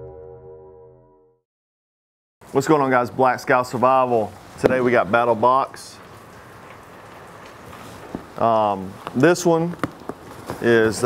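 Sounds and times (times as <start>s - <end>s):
heavy rain falling: 2.5s - 11.0s.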